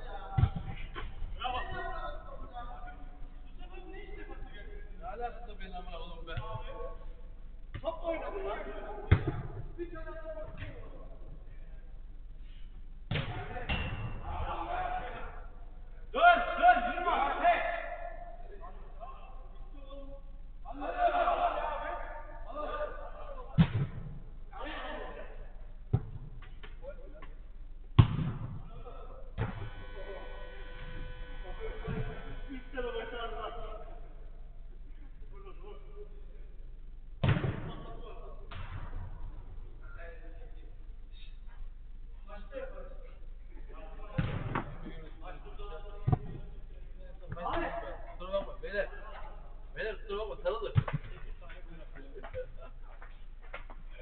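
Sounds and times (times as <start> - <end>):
football thuds: 0.4 - 1.3, 28.0 - 28.8
football being kicked: 28.0 - 28.6.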